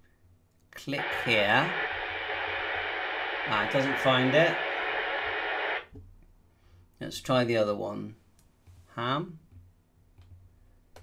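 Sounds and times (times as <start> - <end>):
two-way radio static hiss: 0.8 - 5.9.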